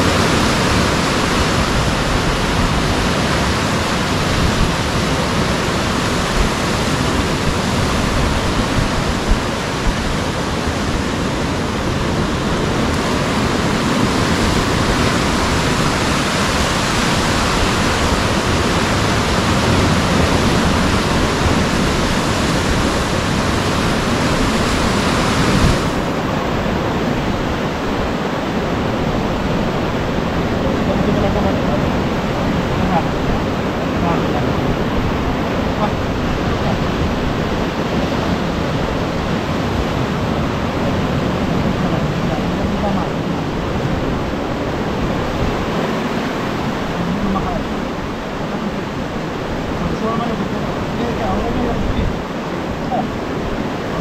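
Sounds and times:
sea surf breaking on rocks: 0.0s - 54.0s.

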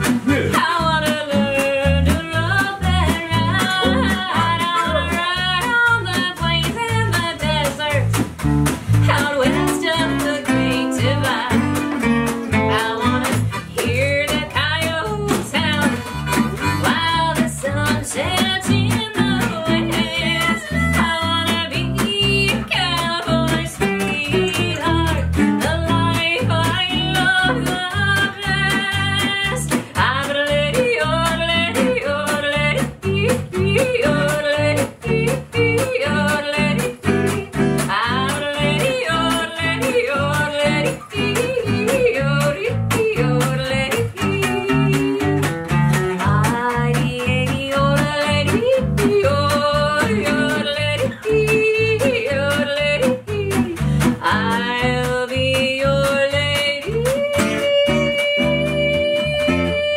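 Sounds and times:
electric bass: 0.0s - 59.9s
strummed acoustic guitar: 0.0s - 59.9s
woman yodeling: 0.5s - 8.0s, 16.7s - 45.3s, 46.5s - 59.9s.

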